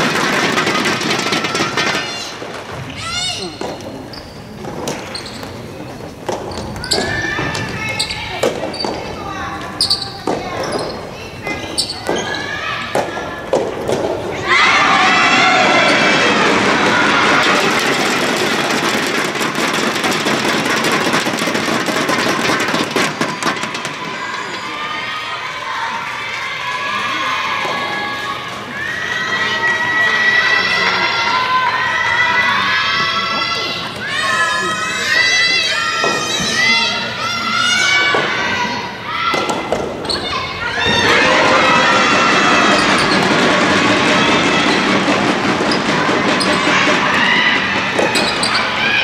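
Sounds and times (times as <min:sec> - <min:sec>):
crowd cheering and shouting: 0:06.8 - 0:49.0.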